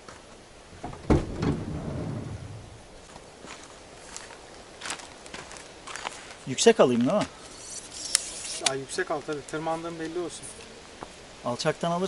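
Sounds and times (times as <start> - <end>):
footsteps on road: 3.0 - 7.6
tripod handling noise: 7.4 - 8.8.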